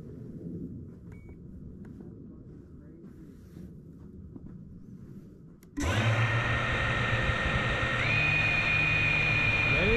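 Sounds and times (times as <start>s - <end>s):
low steady rumble: 0.0s - 9.9s.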